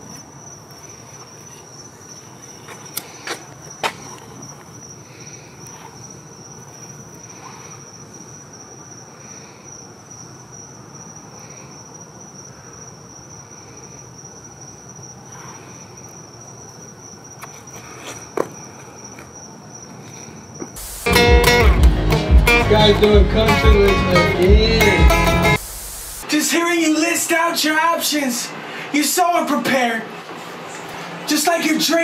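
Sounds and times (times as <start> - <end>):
crickets trilling: 0.0 - 21.3
man breathing heavily: 2.9 - 6.3, 28.6 - 29.0.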